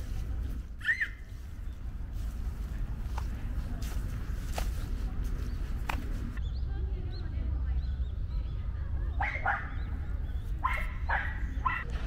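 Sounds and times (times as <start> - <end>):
dog barking: 9.2 - 9.9, 10.6 - 11.9.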